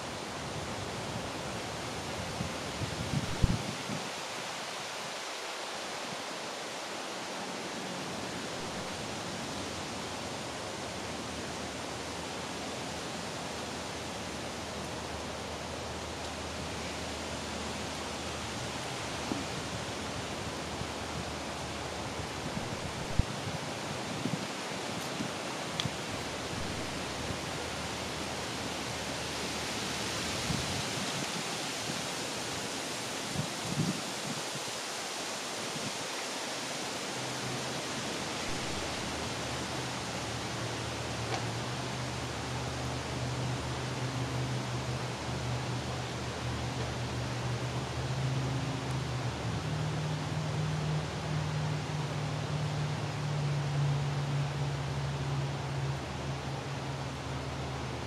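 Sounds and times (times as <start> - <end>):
steady rushing noise: 0.0 - 58.0.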